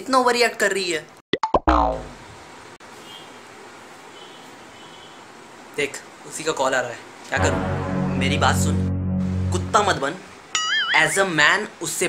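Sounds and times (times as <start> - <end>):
tone falling in pitch: 7.4 - 11.2.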